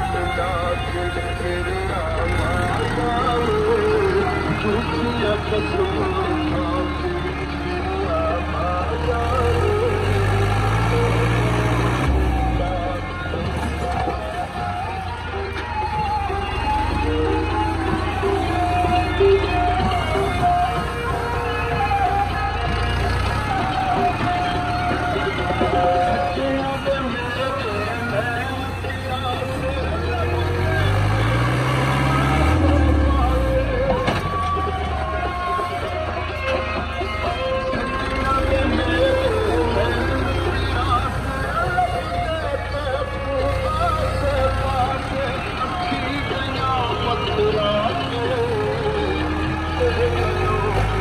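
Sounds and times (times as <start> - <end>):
music: 0.0 - 51.0
tractor diesel engine under load: 0.0 - 51.0.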